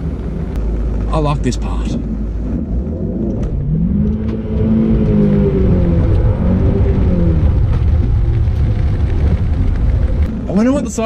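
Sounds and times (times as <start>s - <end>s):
car engine revving: 0.0s - 11.0s
low engine rumble: 0.0s - 11.0s.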